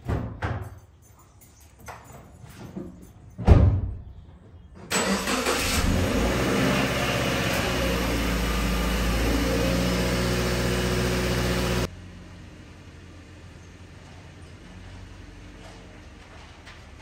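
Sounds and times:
car engine starting and idling: 4.9s - 13.5s.

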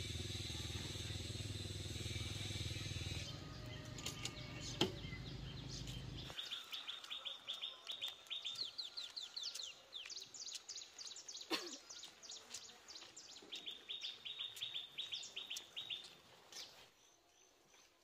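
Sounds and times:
small birds trilling: 0.0s - 17.8s.

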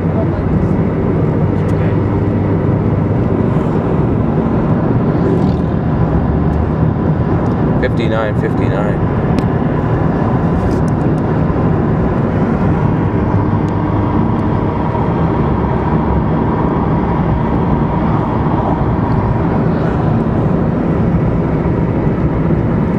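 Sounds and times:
road and engine noise in car: 0.0s - 22.9s.

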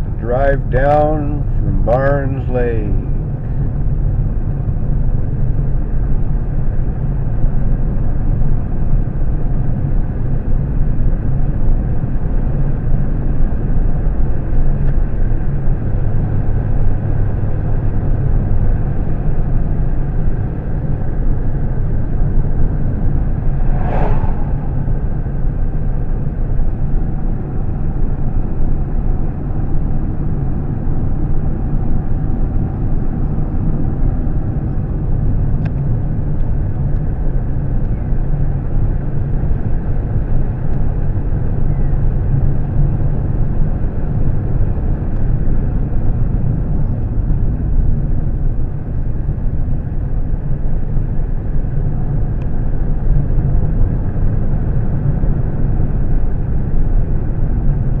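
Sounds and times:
car road and engine noise: 0.0s - 58.0s
passing truck whoosh: 22.5s - 26.5s.

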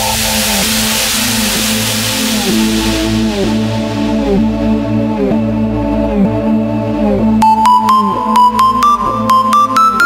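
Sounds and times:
white noise hiss: 0.0s - 4.5s
synth chords sliding down in pitch: 0.0s - 10.0s.

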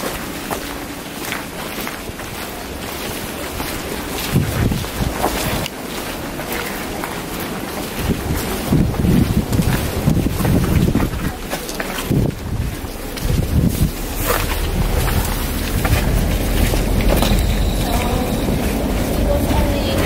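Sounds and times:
wind buffeting microphone: 1.5s - 20.0s.

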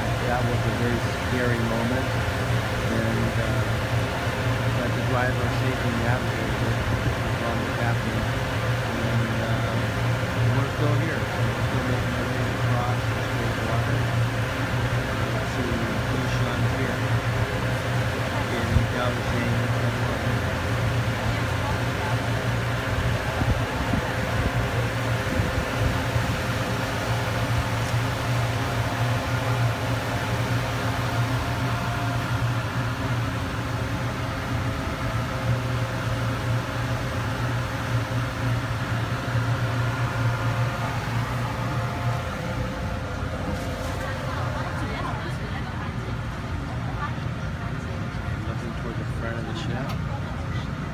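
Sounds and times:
ship engine droning: 0.0s - 50.9s.

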